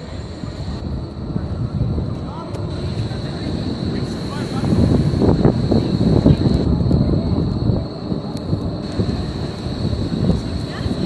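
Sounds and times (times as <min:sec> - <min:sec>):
city square background noise: 0:00.0 - 0:11.0
faint steady high whine: 0:00.0 - 0:11.0
wind buffeting microphone: 0:00.0 - 0:11.0.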